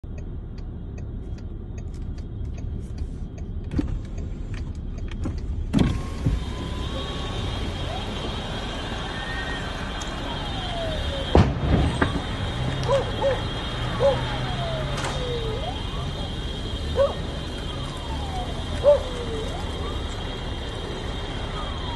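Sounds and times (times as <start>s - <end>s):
car engine rumble: 0.0s - 21.9s
turn signal ticking: 0.0s - 21.9s
power window lowering: 5.7s - 7.6s.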